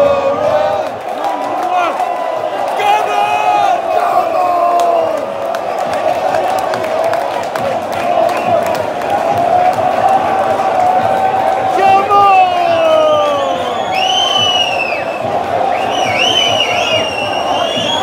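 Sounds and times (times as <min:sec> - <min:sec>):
crowd chanting: 0:00.0 - 0:18.0.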